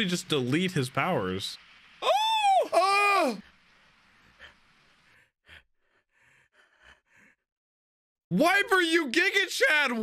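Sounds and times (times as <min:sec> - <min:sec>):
faint breaths: 0:03.5 - 0:07.5.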